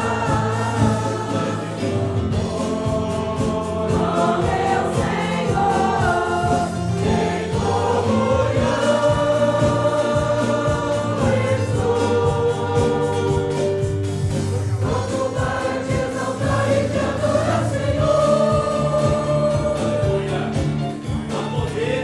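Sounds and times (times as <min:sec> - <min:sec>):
choir singing a slow hymn: 0:00.0 - 0:22.0
instruments accompanying: 0:00.0 - 0:22.0.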